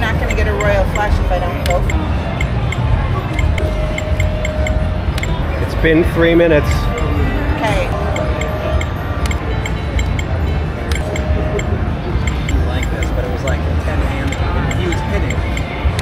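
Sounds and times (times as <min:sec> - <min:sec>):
background music: 0:00.0 - 0:16.0
light ticking rhythm: 0:00.0 - 0:16.0
murmur of voices: 0:00.0 - 0:16.0.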